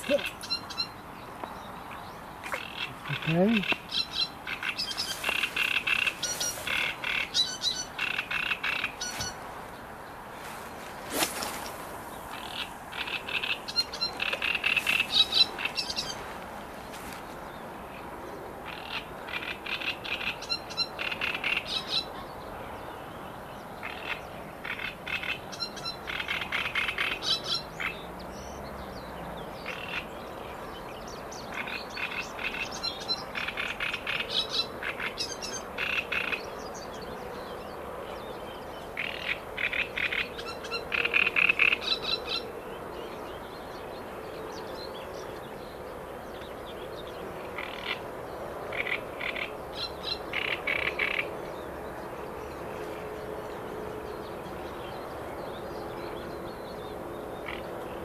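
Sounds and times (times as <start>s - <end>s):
frogs croaking in chorus: 1.8s - 9.1s, 12.3s - 16.2s, 17.9s - 22.2s, 23.8s - 28.1s, 29.6s - 30.3s, 31.5s - 37.3s, 38.9s - 43.0s, 46.8s - 52.1s, 57.3s - 58.0s.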